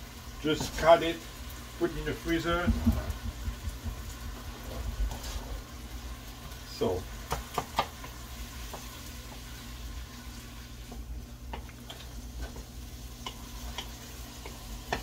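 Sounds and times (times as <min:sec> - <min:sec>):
food sizzling: 0:00.0 - 0:15.0.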